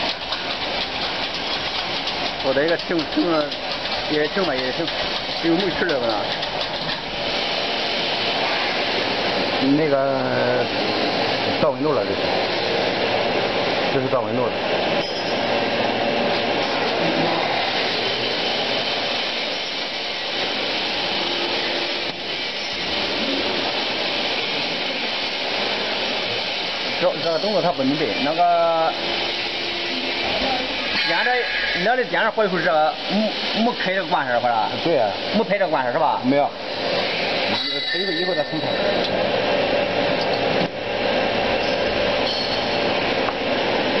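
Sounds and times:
roaster machine rushing: 0.0 - 44.0.

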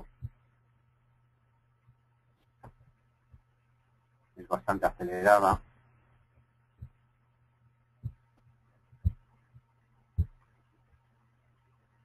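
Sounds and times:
low steady hum: 0.0 - 12.0
dull thumps: 9.0 - 10.4.

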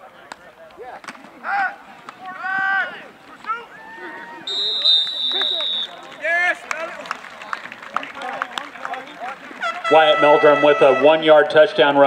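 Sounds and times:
players shouting calls: 0.7 - 12.0.

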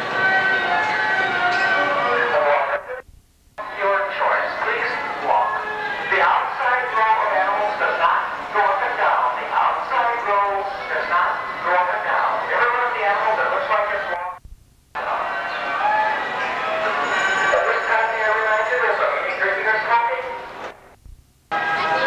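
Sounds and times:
carousel band organ playing: 0.0 - 3.0, 15.0 - 20.6.

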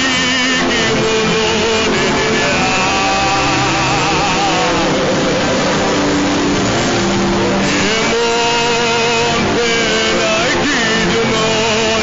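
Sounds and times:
congregation praying aloud: 0.0 - 12.0
held keyboard notes: 0.0 - 12.0.

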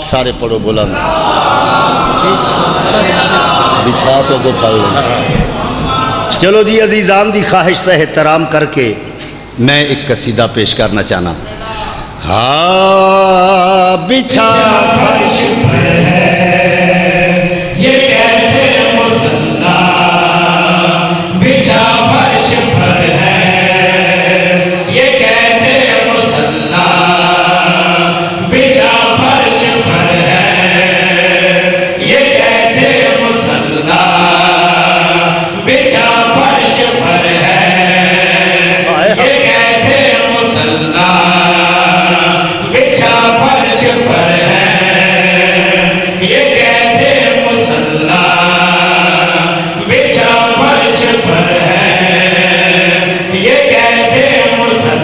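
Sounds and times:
men chanting through loudspeakers: 0.8 - 8.2, 12.0 - 55.0.

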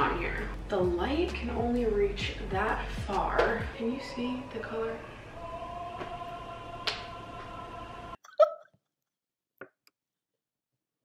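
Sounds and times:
faint hum: 0.0 - 8.2.

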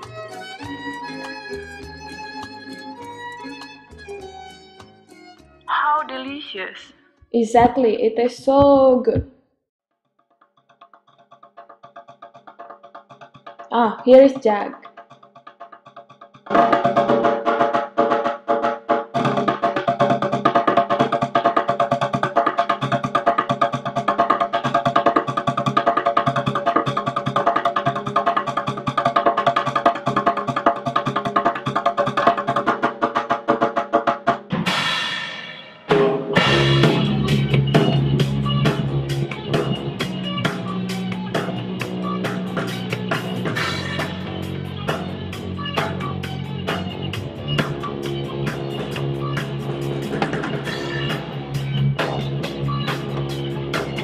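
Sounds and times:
fast drumming over held chord: 11.4 - 35.0, 35.9 - 54.0
rock band playing: 34.4 - 54.0
cymbal crash: 34.5 - 37.8.

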